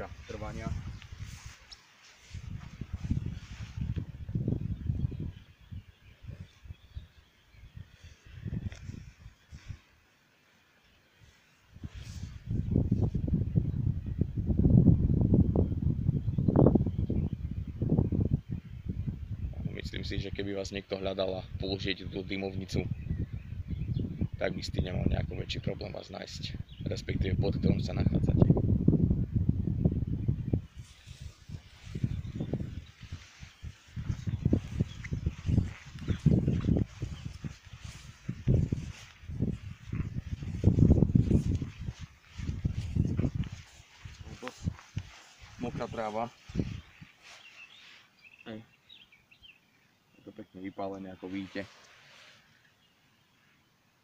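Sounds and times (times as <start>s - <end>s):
footsteps through tall grass: 0.0s - 4.9s, 8.1s - 10.6s, 11.2s - 13.2s, 30.6s - 48.3s, 51.3s - 52.6s
wind buffeting microphone: 0.0s - 9.8s, 11.8s - 20.3s, 21.4s - 48.4s.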